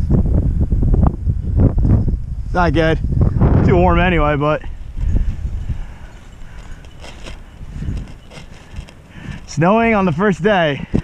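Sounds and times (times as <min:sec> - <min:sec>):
wind rumbling on microphone: 0:00.0 - 0:11.0
footsteps through long grass: 0:04.6 - 0:10.7
short brushing sounds: 0:05.0 - 0:09.7.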